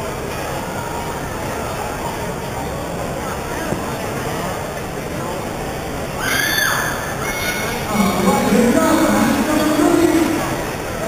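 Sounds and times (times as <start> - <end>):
crowd noise in a gymnasium: 0.0 - 11.0
loud high-pitched cry: 6.2 - 7.8.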